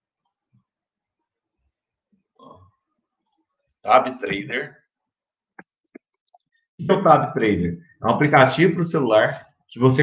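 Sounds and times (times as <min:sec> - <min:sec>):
computer clicks: 0:00.1 - 0:00.6, 0:03.2 - 0:03.8
man speaking: 0:03.8 - 0:04.9, 0:06.8 - 0:10.0.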